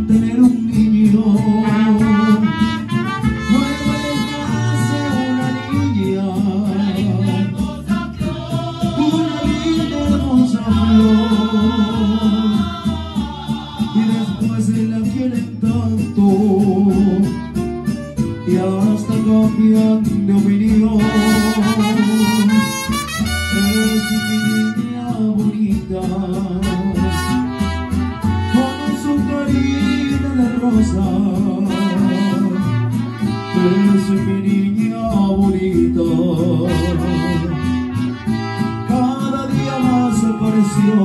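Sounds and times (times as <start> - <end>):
guitars: 0.0 - 41.0
steady bass line: 0.0 - 41.0
trumpet and saxophone melody: 1.6 - 6.3, 17.4 - 20.0, 20.9 - 25.0, 26.6 - 34.7, 36.6 - 41.0.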